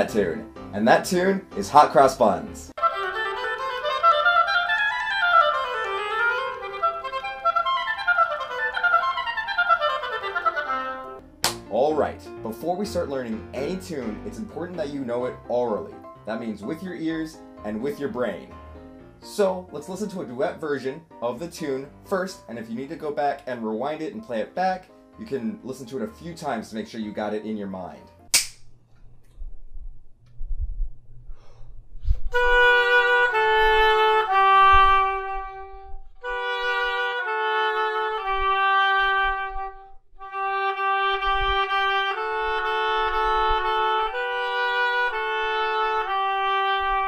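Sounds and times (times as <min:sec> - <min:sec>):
woodwind scale runs: 0:02.8 - 0:11.2, 0:32.3 - 0:47.0
hand clap: 0:11.4 - 0:11.7, 0:28.4 - 0:28.6
low rumble of room noise: 0:28.7 - 0:34.3.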